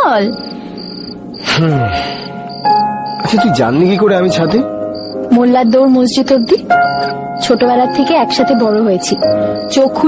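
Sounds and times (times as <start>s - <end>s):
background music with drone notes: 0.0s - 10.0s
crickets chirping: 0.0s - 10.0s.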